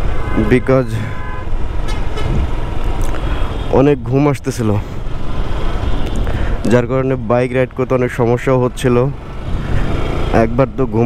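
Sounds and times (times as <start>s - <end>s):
motorcycle rumble: 0.0s - 11.0s
rider speaking: 0.4s - 1.3s, 3.6s - 5.0s, 6.6s - 11.0s
wind rushing on microphone: 2.1s - 2.8s.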